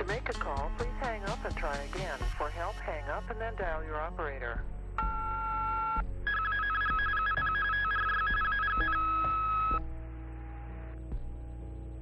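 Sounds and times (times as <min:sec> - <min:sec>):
telephone howler tone pulsing: 0:06.3 - 0:09.8.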